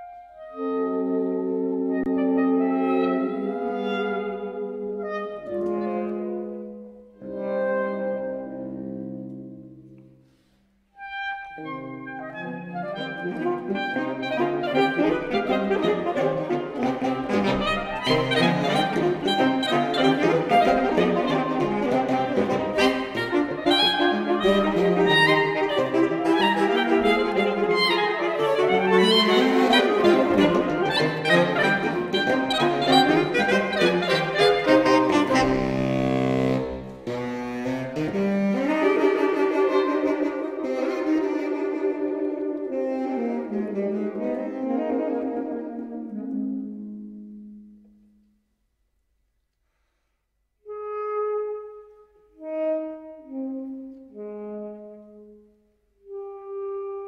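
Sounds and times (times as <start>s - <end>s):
saxophone quartet playing: 0.0s - 48.4s, 50.6s - 57.0s.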